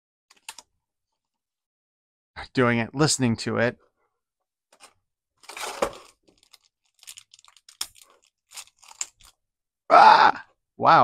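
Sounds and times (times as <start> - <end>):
plastic packaging crinkling: 5.4 - 9.4.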